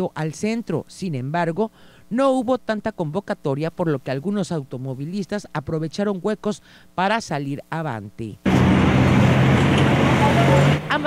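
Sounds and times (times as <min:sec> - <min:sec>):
road noise: 0:08.4 - 0:11.0
engines idling: 0:08.5 - 0:11.0.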